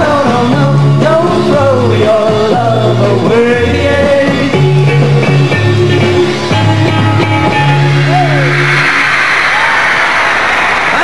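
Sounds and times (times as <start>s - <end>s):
crowd screaming and cheering: 7.4s - 11.0s.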